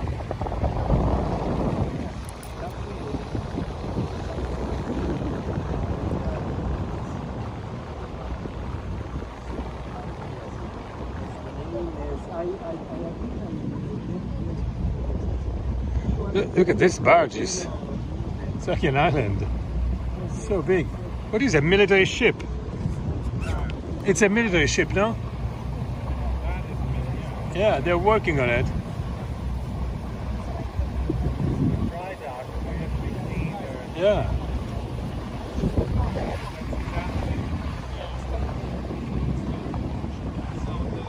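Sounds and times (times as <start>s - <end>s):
boat motor rumbling: 0.0s - 41.0s
faint voices talking: 0.0s - 41.0s.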